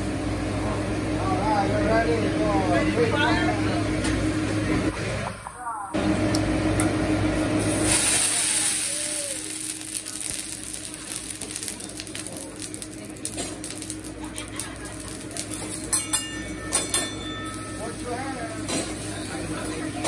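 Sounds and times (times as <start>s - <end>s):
griddle sizzling: 0.0s - 20.0s.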